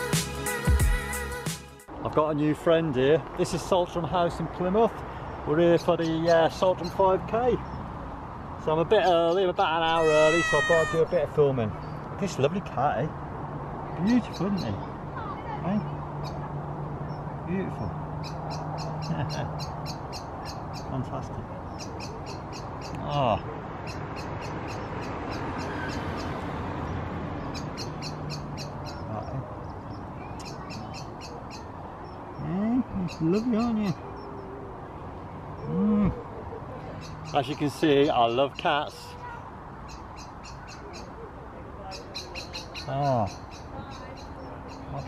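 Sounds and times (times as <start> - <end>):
outdoor background noise: 0.0 - 45.0
small bird chirping: 17.0 - 34.6.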